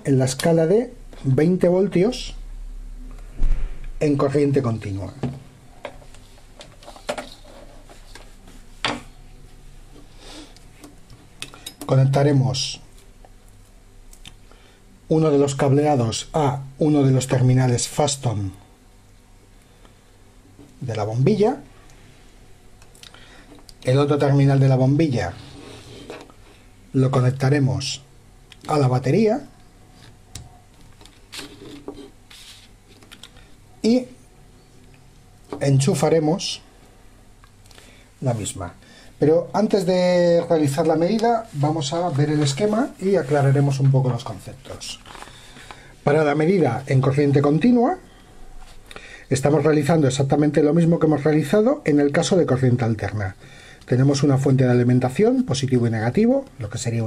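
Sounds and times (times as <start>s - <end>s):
wires rustling on a tabletop: 5.8s - 11.9s, 25.2s - 26.7s, 29.9s - 33.5s, 40.3s - 45.8s.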